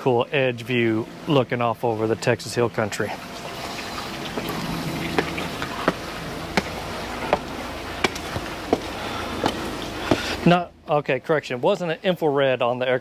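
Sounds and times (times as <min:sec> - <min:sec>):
outdoor background hum: 0:00.0 - 0:13.0
footsteps on stone pavement: 0:04.3 - 0:10.4.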